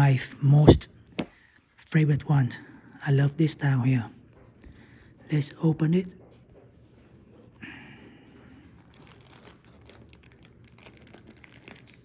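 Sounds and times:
plastic bag crinkling: 0:08.3 - 0:12.0.

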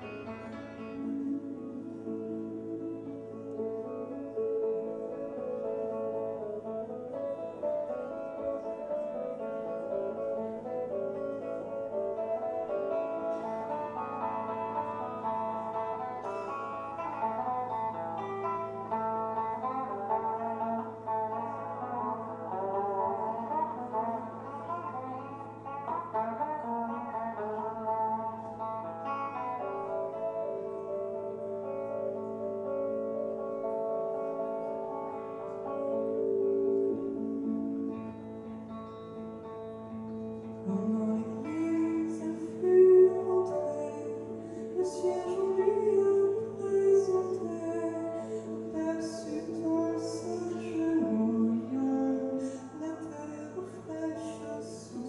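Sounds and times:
acoustic guitar plucked notes: 0:00.0 - 0:55.0.

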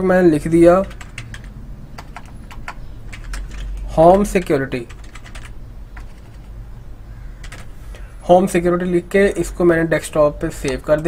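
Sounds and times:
steady low hum: 0:00.0 - 0:11.0
computer keyboard typing: 0:00.4 - 0:06.6, 0:07.4 - 0:07.8, 0:10.6 - 0:11.0.

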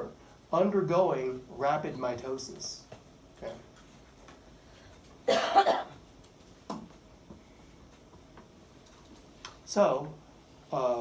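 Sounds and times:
person coughing loudly: 0:05.3 - 0:06.0.

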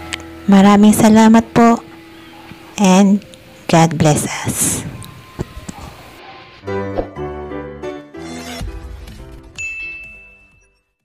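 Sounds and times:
outro music: 0:05.2 - 0:09.6
electronic bell ding: 0:09.6 - 0:10.9.

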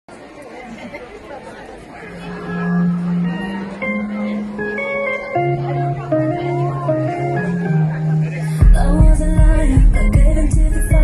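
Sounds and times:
audience murmuring: 0:00.1 - 0:11.0.

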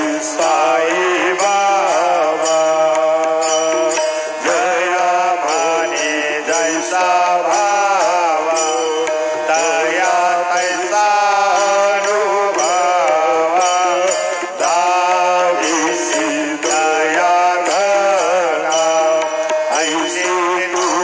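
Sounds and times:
hymn chant singing: 0:00.0 - 0:21.0
metallic jingle: 0:00.0 - 0:21.0.

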